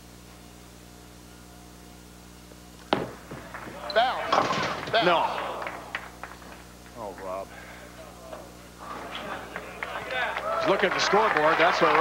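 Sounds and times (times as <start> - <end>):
faint steady hum: 0.0 - 12.0
bowling ball striking pins: 2.9 - 6.4
voices reacting: 3.5 - 6.3, 7.0 - 12.0.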